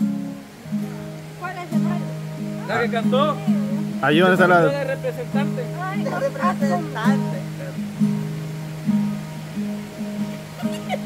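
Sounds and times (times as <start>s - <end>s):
acoustic guitar chords strummed: 0.0s - 11.0s.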